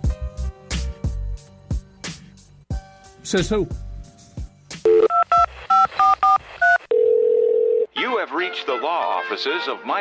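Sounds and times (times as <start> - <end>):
steady telephone line tone: 4.9 - 7.9
telephone keypad dialing beeps: 4.9 - 7.9.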